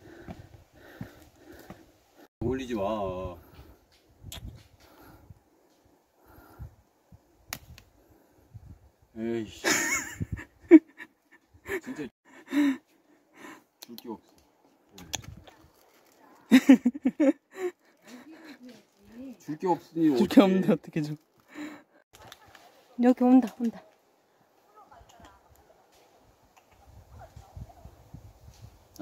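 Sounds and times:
soft breathing puffs: 0:00.0 - 0:02.3.

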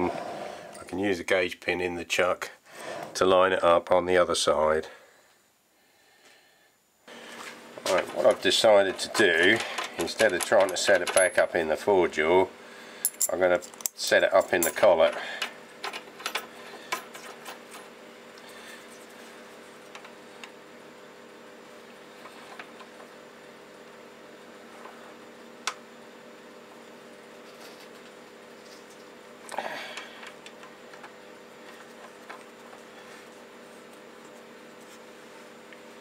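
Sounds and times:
faint steady hum: 0:00.0 - 0:36.0.

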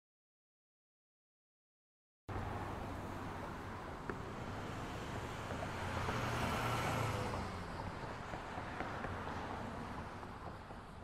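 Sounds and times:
vehicle passing: 0:02.3 - 0:10.7
road noise: 0:02.3 - 0:11.0.

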